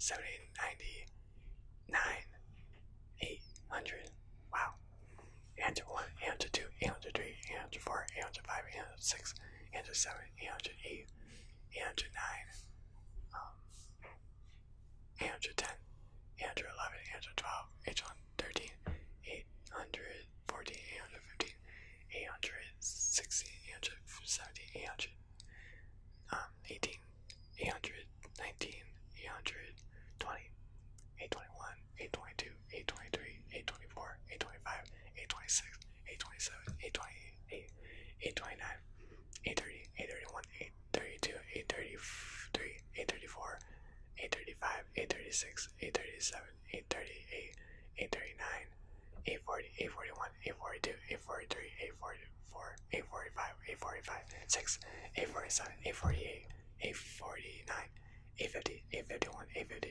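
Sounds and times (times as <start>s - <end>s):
man whispering: 0.0s - 59.9s.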